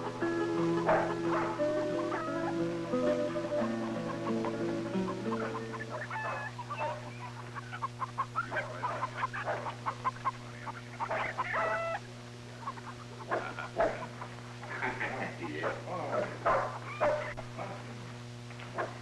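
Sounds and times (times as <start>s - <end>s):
guitar notes: 0.0s - 7.6s
chicken squawk: 0.0s - 17.5s
chickens clucking: 0.0s - 19.0s.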